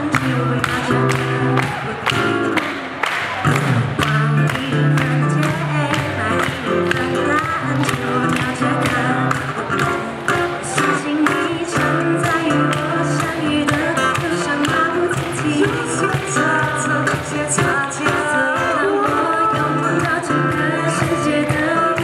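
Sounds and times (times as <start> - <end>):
acoustic guitar: 0.0 - 22.0
cajon beat: 0.0 - 22.0
voices singing in harmony: 4.6 - 22.0.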